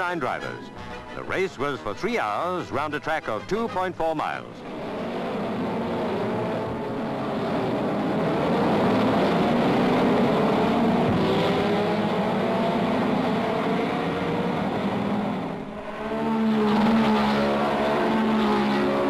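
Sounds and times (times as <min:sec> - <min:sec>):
racing car engines revving: 0:03.6 - 0:19.0.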